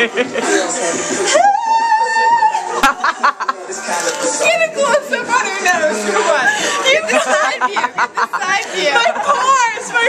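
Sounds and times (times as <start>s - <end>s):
women laughing: 2.1s - 3.8s, 6.2s - 9.8s
women talking: 4.4s - 10.0s.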